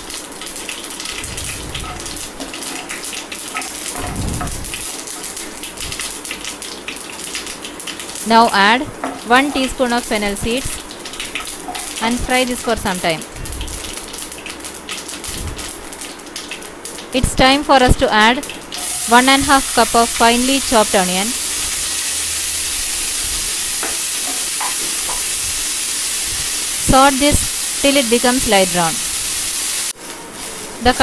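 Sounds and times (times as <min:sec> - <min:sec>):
onions sizzling in oil: 0:00.0 - 0:17.0, 0:18.5 - 0:31.0
seeds sizzling in hot oil: 0:18.8 - 0:31.0.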